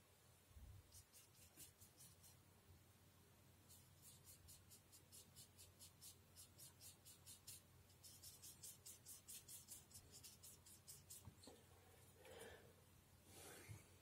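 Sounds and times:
paintbrush scrubbing on paper: 0:00.8 - 0:02.4, 0:03.6 - 0:11.4.

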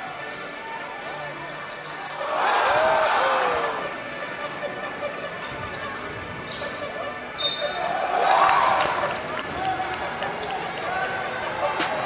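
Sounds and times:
crowd voices: 0:00.0 - 0:12.0
sneakers squeaking: 0:01.7 - 0:12.0.

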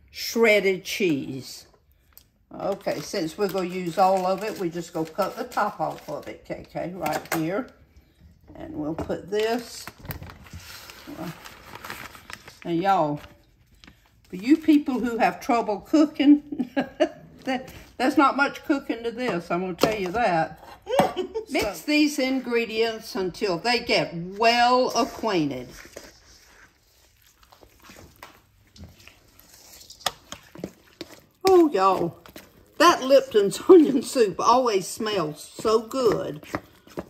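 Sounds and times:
plastic bag crinkling: 0:02.6 - 0:07.6, 0:09.5 - 0:15.0, 0:25.0 - 0:34.1
spatula stirring thick mix in bowl: 0:24.4 - 0:37.0.

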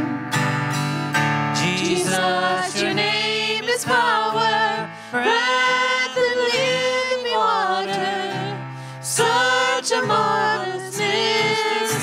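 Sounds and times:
acoustic guitar strumming: 0:00.0 - 0:12.0
people singing sustained notes: 0:01.6 - 0:12.0.

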